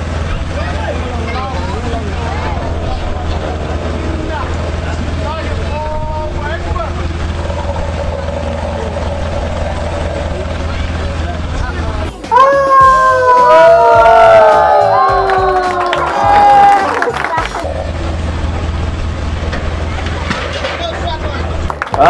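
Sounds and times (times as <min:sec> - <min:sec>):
low machinery hum: 0:00.0 - 0:12.2, 0:13.0 - 0:22.0
voices: 0:00.0 - 0:22.0
gliding pitched calls: 0:01.6 - 0:13.9, 0:14.6 - 0:18.7.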